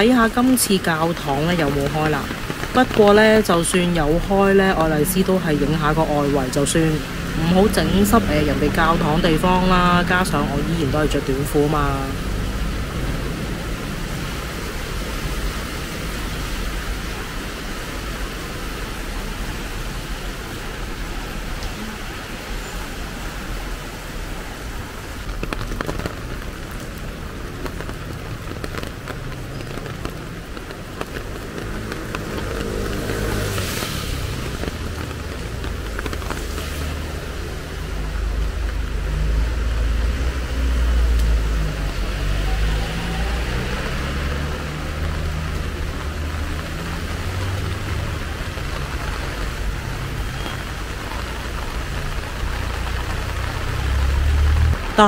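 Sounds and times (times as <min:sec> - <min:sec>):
rain on a street: 0:00.0 - 0:55.0
traffic on wet road: 0:00.0 - 0:55.0.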